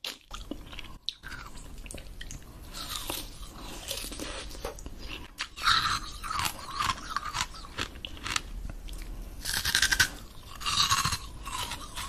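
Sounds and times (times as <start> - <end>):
ice crunching while chewed: 2.8 - 12.0.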